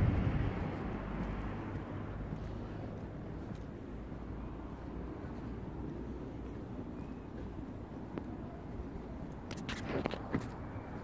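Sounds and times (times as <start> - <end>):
low street rumble: 0.0 - 11.0.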